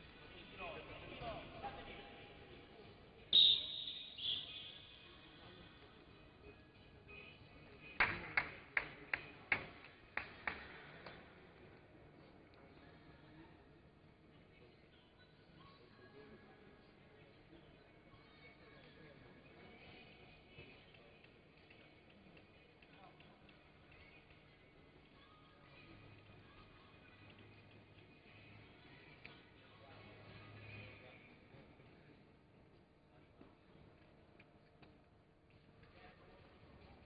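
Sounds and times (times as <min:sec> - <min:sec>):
referee's whistle blasts: 0:03.3 - 0:04.9.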